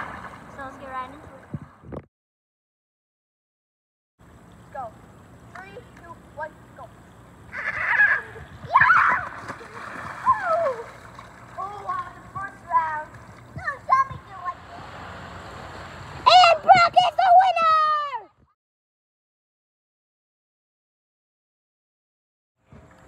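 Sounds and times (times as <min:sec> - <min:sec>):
water splashing: 0:00.0 - 0:01.5, 0:07.5 - 0:17.1
children shouting and squealing: 0:07.5 - 0:11.0, 0:16.0 - 0:18.4.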